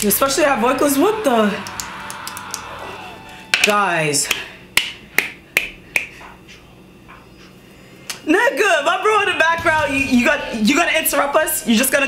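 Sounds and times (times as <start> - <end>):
sharp hand claps: 1.6 - 2.7, 3.5 - 6.2.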